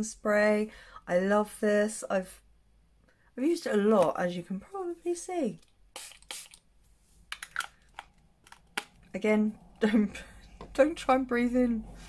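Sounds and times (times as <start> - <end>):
spray bottle spritzing: 5.9 - 6.6.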